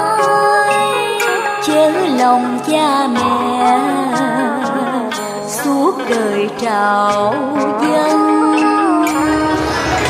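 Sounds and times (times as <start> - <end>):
woman singing with vibrato: 0.0 - 10.0.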